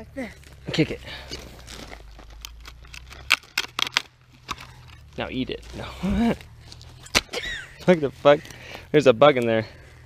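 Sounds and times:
rotten wood cracking and snapping: 0.3s - 7.5s.

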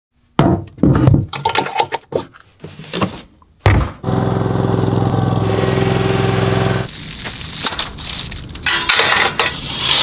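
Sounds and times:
helmet thunking on wooden shelf: 0.4s - 1.3s.

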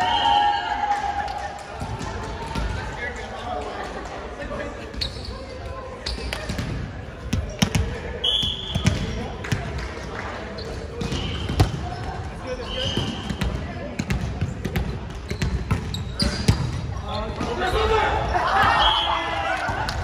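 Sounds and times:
sneakers squeaking on floor: 4.9s - 9.3s, 10.6s - 19.2s
volleyball being hit and bouncing: 10.9s - 12.2s, 12.9s - 17.6s.

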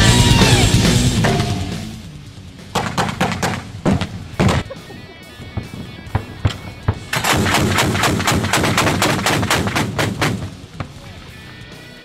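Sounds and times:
autocannon fire: 0.0s - 11.4s.

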